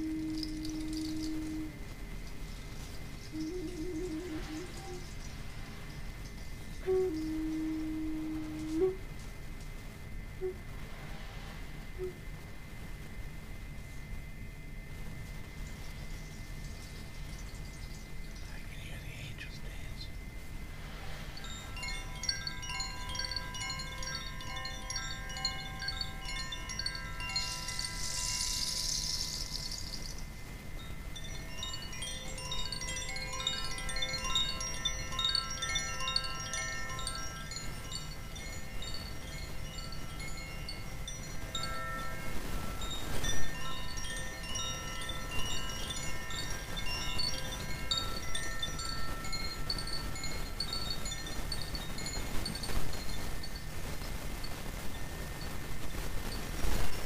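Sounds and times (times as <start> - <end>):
wind chime ringing: 0.0 - 1.5, 21.3 - 55.5.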